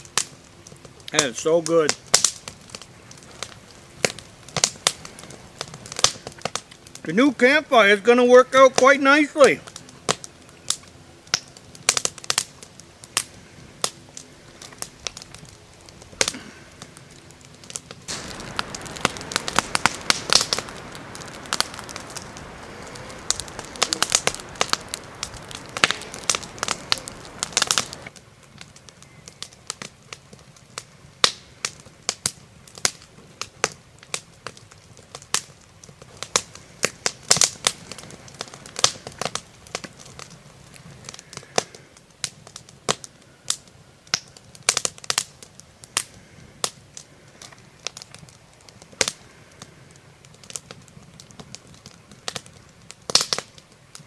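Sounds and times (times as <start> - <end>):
campfire crackling and popping: 0.0 - 54.0
rushing sound of flames: 0.0 - 54.0.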